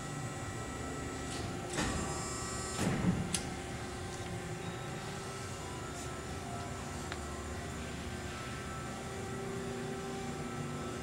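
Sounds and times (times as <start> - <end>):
hydraulic power unit humming: 0.0 - 11.0
machine clunk: 1.7 - 3.5.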